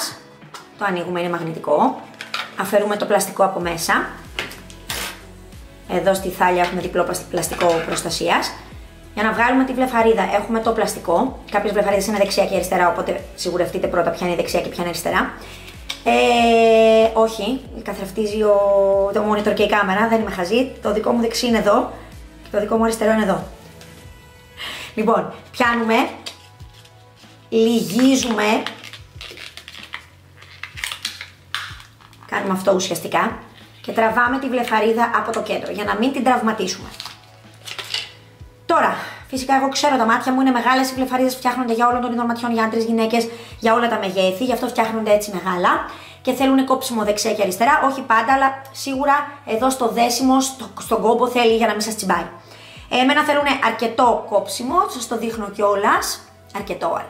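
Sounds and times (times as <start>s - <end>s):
background music with low beat: 0.0s - 57.0s
plastic packaging rustling: 26.1s - 32.4s, 36.8s - 38.2s.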